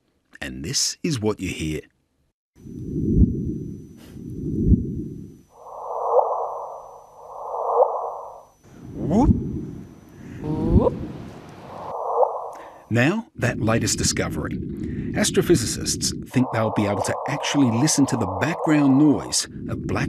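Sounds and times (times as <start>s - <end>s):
rushes of noise with rising chirp: 2.6s - 12.7s, 16.3s - 19.3s.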